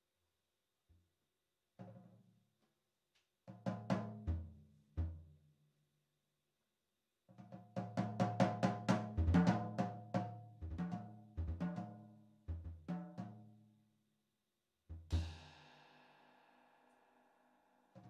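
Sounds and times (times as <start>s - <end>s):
drum kit solo: 14.9s - 15.4s.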